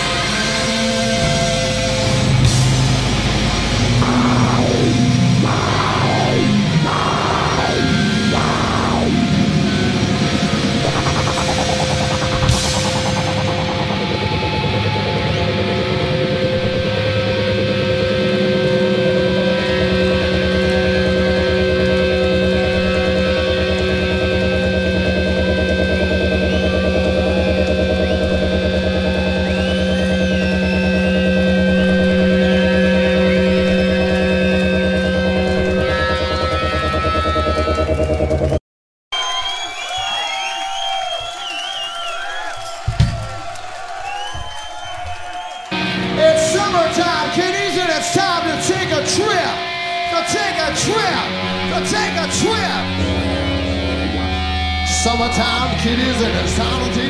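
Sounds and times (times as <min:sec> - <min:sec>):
rock band chord with feedback: 0:00.0 - 0:38.5, 0:45.7 - 0:57.0
crowd cheering and whistling: 0:00.0 - 0:48.5.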